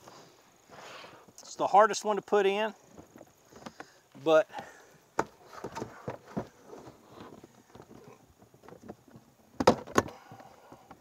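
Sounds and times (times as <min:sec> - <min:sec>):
plastic panels knocking and clicking: 0:05.2 - 0:06.6, 0:08.6 - 0:11.0
plastic panel snapping: 0:09.6 - 0:10.2.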